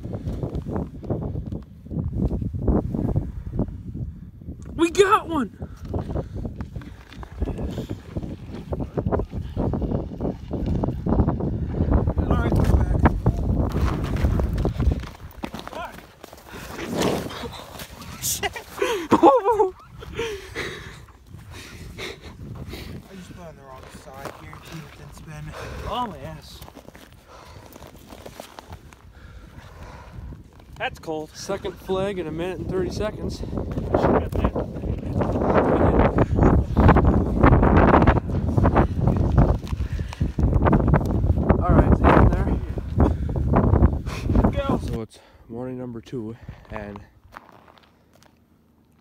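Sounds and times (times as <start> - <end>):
microphone handling rumble: 5.7 - 15.8, 32.2 - 45.0
snow and slush crunching: 13.7 - 19.7, 22.8 - 29.1.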